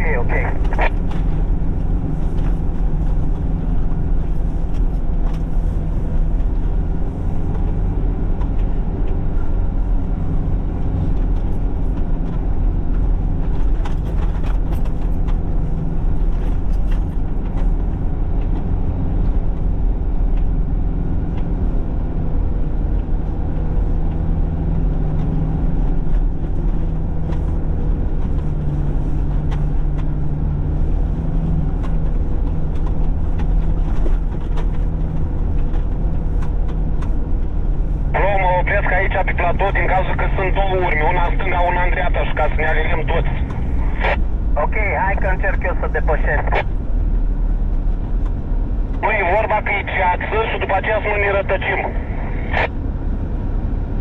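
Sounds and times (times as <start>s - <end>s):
car engine and tyre drone: 0.0s - 38.2s.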